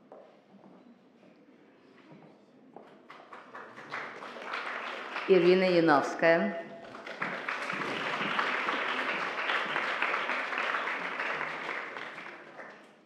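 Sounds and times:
audience applauding: 0:03.1 - 0:06.1, 0:06.8 - 0:13.0.

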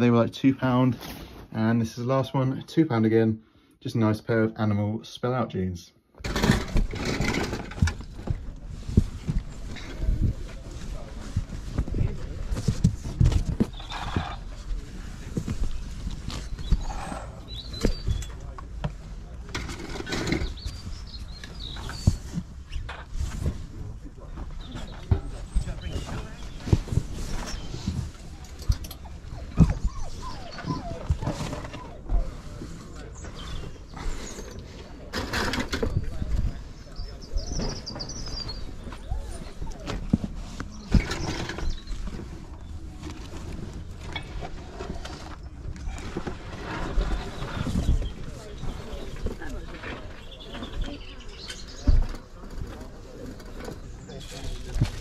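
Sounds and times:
fabric and cardboard rustling: 0:06.2 - 0:55.0.

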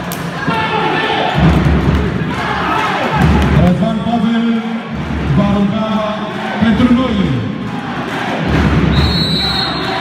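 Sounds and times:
crowd noise in indoor hall: 0:00.0 - 0:10.0
referee's whistle: 0:08.9 - 0:10.0.

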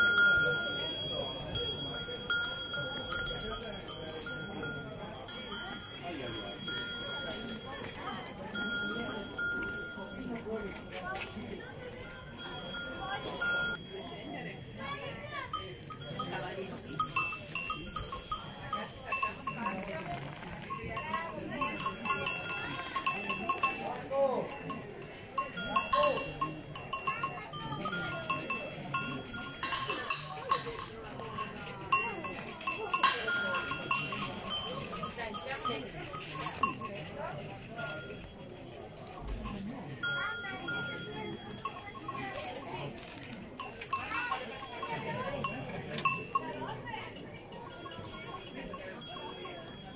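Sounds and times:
people talking: 0:00.0 - 0:49.9
sheep bell clanking: 0:00.0 - 0:49.9.

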